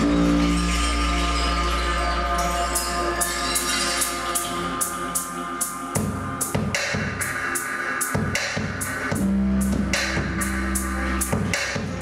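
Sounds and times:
low electronic drone: 0.0s - 6.6s, 9.1s - 12.0s.

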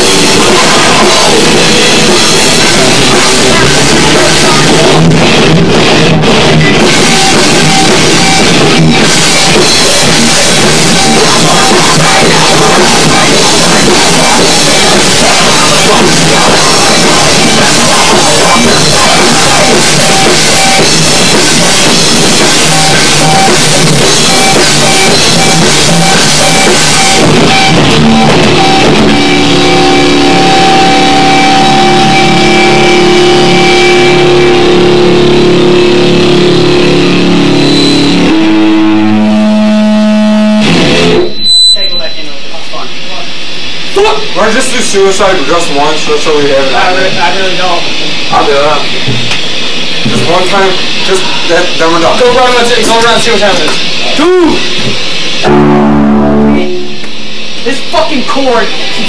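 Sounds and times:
bass guitar: 0.0s - 59.0s
distorted electric guitars: 0.0s - 59.0s
drum kit playing hard: 0.0s - 59.0s.

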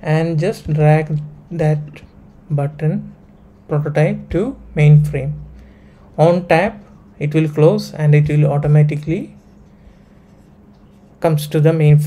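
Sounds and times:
man narrating: 0.0s - 5.5s, 6.2s - 9.4s, 11.2s - 12.0s.

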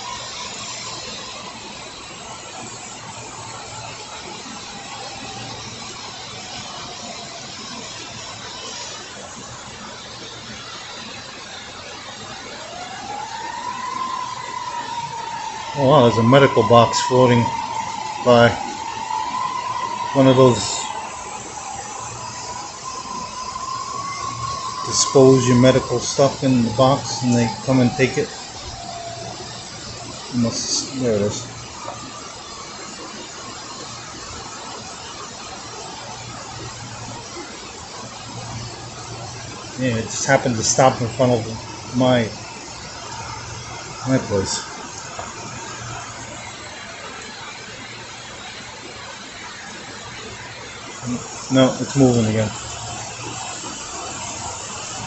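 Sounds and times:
floodwater rushing down street: 0.0s - 55.0s
rain falling on water: 0.0s - 55.0s
thin high tone: 12.2s - 47.5s, 50.4s - 55.0s.

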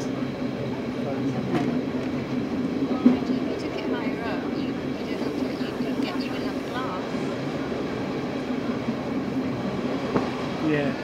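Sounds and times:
train rumble from inside carriage: 0.0s - 11.0s.

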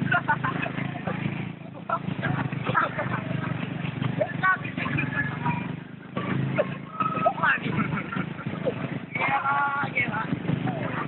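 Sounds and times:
motorcycle and street traffic: 0.0s - 11.0s
excited voices calling out: 2.0s - 11.0s.

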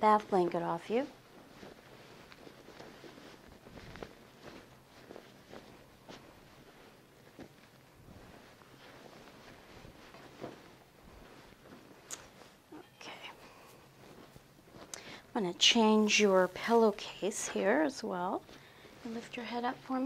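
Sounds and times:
cloth rustling: 0.3s - 15.0s.

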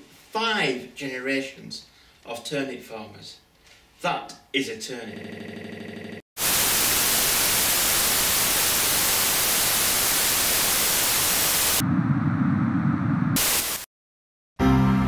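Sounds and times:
television static hiss: 6.4s - 11.8s, 13.4s - 13.9s
low rumbling noise: 11.8s - 13.4s
music: 14.6s - 15.0s.

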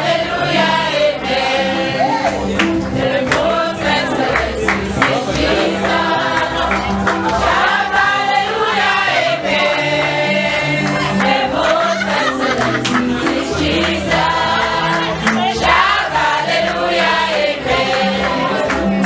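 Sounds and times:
women singing in chorus: 0.0s - 19.0s.

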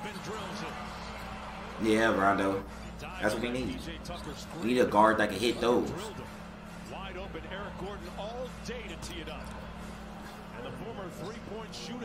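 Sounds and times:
commentators talking: 1.8s - 9.6s.

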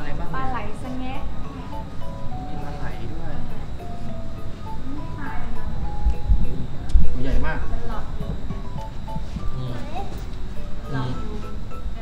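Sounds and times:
melodic tune of held notes: 0.0s - 12.0s.

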